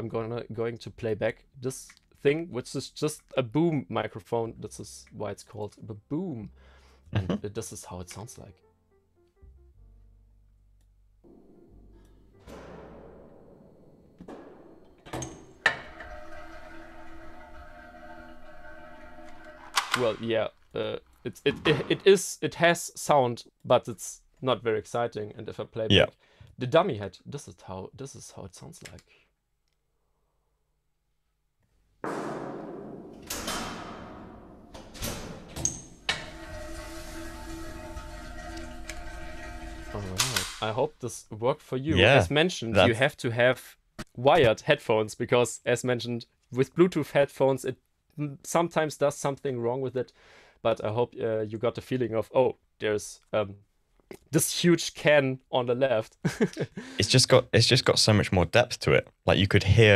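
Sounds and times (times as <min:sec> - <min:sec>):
sharp knocks and thuds: 0:11.3 - 0:15.9, 0:32.0 - 0:34.5.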